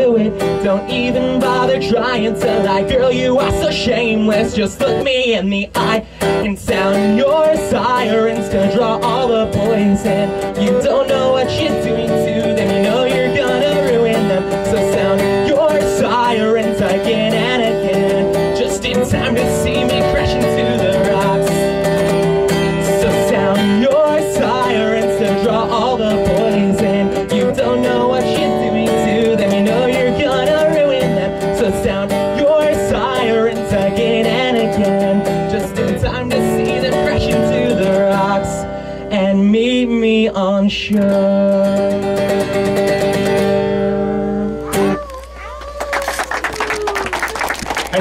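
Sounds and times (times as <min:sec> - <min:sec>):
man singing: 0:00.0 - 0:42.8
acoustic guitar strumming: 0:00.0 - 0:45.4.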